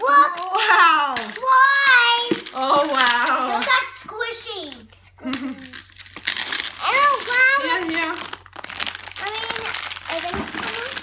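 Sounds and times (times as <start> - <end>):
foil packet crinkling: 0.0 - 11.0
child calling out: 6.8 - 7.9.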